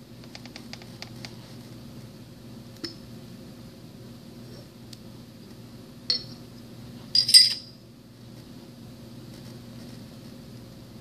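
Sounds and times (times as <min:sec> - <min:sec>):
metal parts clinking: 0:07.2 - 0:07.7.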